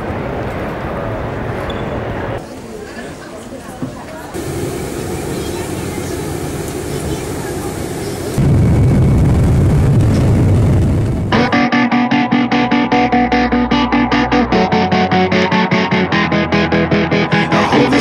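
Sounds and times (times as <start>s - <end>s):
jet cabin low rumble: 4.3s - 11.5s
indistinct voices: 17.1s - 18.0s.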